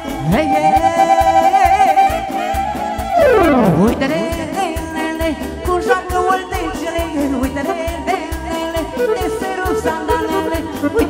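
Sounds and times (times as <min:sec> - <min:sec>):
live band playing folk dance music: 0:00.0 - 0:11.0
saxophone melody: 0:02.1 - 0:05.0.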